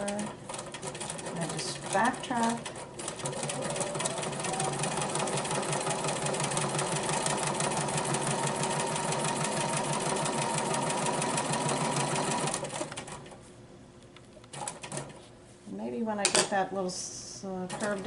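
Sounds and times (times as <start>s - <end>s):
sewing machine stitching: 0.0s - 13.2s.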